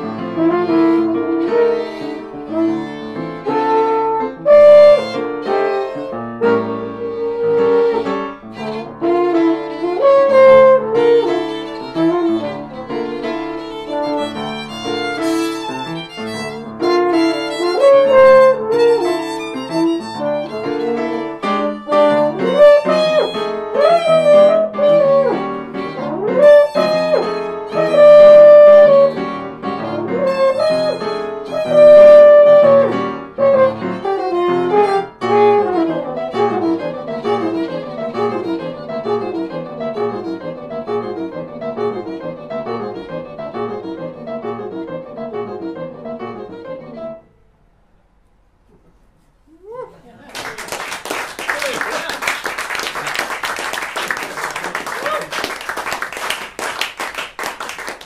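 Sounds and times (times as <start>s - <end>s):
jazz trio playing: 0.0s - 47.2s
violin melody: 0.0s - 47.3s.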